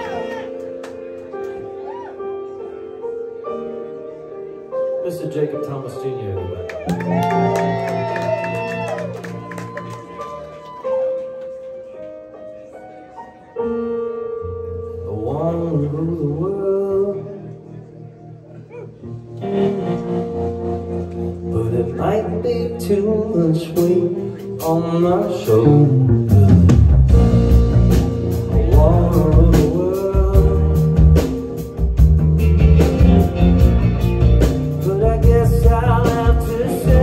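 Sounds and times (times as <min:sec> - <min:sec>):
live rock band playing: 0:00.0 - 0:05.0, 0:06.7 - 0:12.7, 0:18.9 - 0:37.0
guitars and keyboard chords: 0:17.2 - 0:37.0
drums steady beat: 0:26.3 - 0:37.0.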